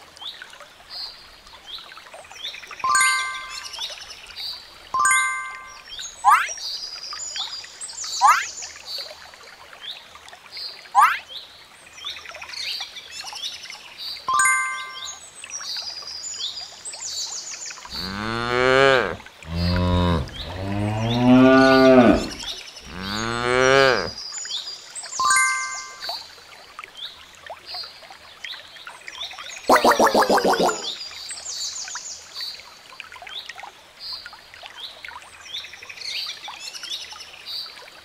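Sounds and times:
high chirps: 2.8 - 3.9, 5.0 - 6.5, 14.3 - 15.2, 25.2 - 26.2, 29.7 - 31.0
chime-like ding: 2.9 - 3.8, 5.0 - 5.9, 14.3 - 15.2, 25.2 - 26.2
cattle mooing: 17.9 - 24.2.

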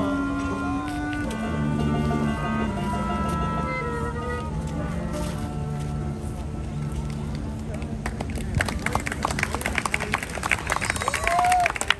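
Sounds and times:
people clapping: 7.1 - 11.9.

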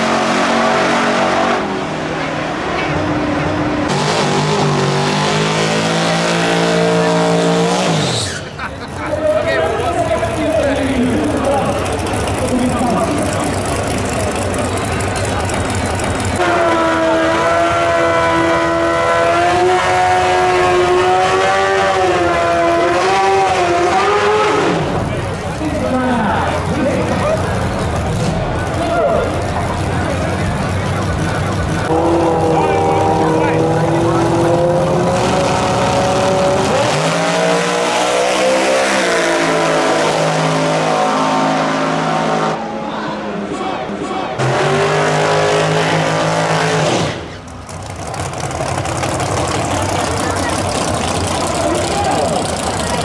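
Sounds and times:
race car engine revving: 0.0 - 53.0
truck engine at high revs: 0.0 - 53.0
voices: 8.1 - 17.4, 23.8 - 35.8, 42.6 - 44.5, 49.3 - 53.0.

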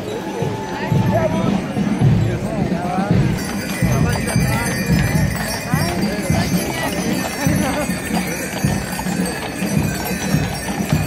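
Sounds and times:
horse hooves clip-clopping on asphalt: 0.2 - 11.0
harness fittings jingling: 1.0 - 11.0.

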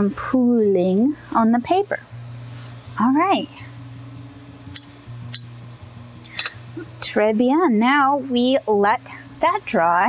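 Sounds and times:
low hum: 0.9 - 10.0.

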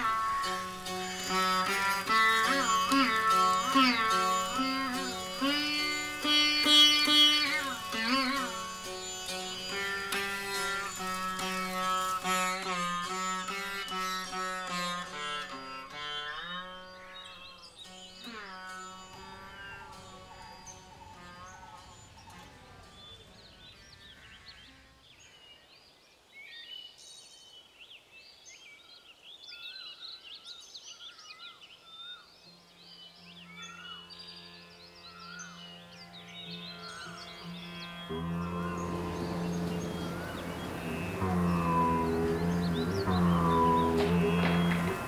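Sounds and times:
classical string music: 0.0 - 24.9, 32.5 - 45.0
faint string music: 0.0 - 25.4, 32.3 - 45.0
birds chirping and calling: 0.0 - 25.5, 29.6 - 45.0
low steady drone: 18.3 - 24.5, 34.3 - 45.0.

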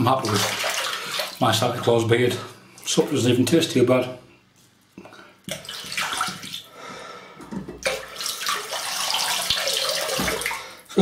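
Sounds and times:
tap water running into sink: 7.5 - 10.7.

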